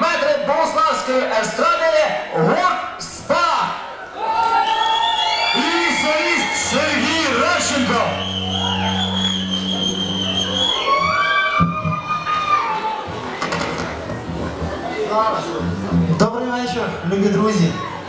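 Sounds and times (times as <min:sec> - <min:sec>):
audience cheering and shouting: 0:03.6 - 0:18.0.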